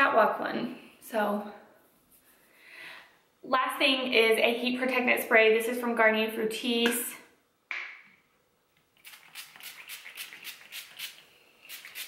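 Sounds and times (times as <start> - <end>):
pump spray bottle spraying: 9.0 - 12.0.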